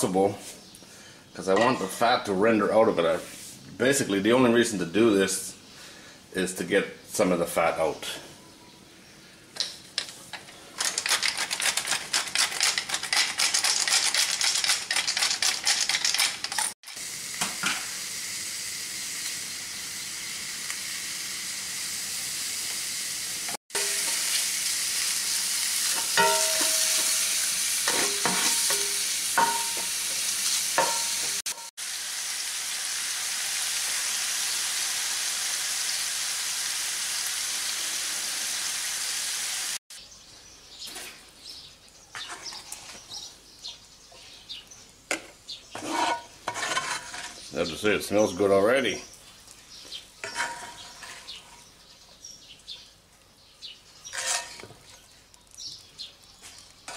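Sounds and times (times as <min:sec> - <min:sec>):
meat sizzling in a skillet: 0:16.8 - 0:39.8
spatula clinking against pan: 0:26.0 - 0:30.0, 0:30.8 - 0:31.3.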